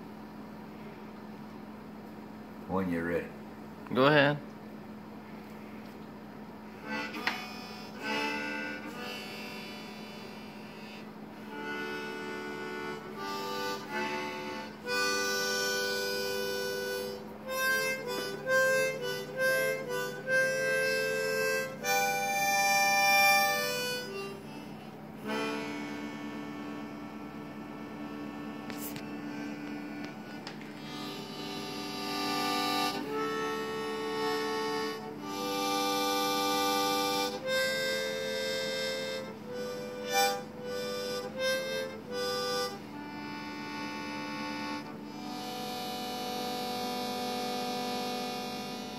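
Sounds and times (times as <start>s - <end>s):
harmonica playing: 6.6s - 48.9s.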